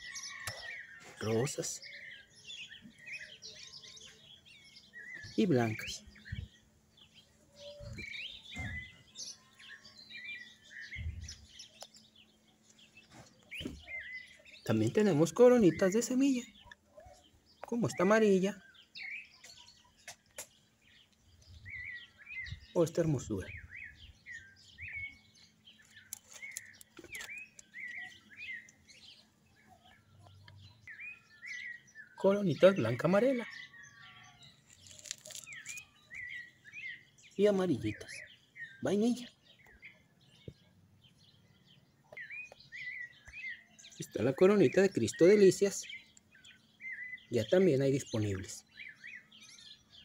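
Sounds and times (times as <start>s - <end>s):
birds chirping: 0.0s - 50.0s
soft low thumps: 7.8s - 9.0s.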